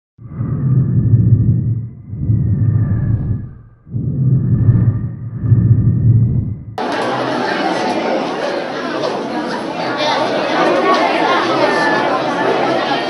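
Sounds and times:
deep rumbling swells: 0.2 - 6.8
whooshes: 0.2 - 6.8.

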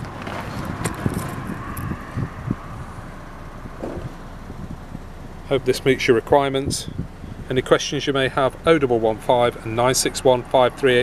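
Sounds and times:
camera handling rumble: 0.0 - 2.0.

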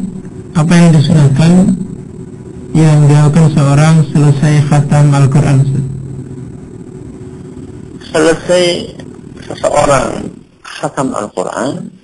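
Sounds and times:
low background rumble: 0.0 - 12.0.

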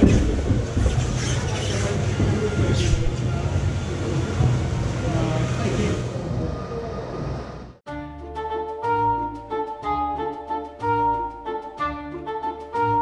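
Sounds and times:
log flume boat moving: 0.0 - 7.7
bright music with flute notes: 7.9 - 13.0.

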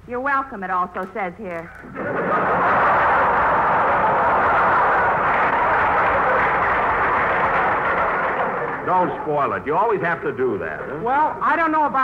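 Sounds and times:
studio audience laughing: 1.8 - 10.6
audience applauding: 2.0 - 11.4.

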